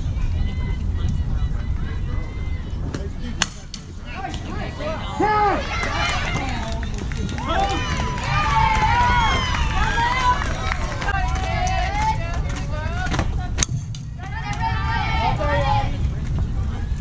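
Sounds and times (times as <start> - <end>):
wind rumble on microphone: 0.0 - 5.1, 6.0 - 17.0
bat hitting softball: 3.4 - 3.9
girls shouting and cheering: 4.6 - 12.4, 14.2 - 16.0.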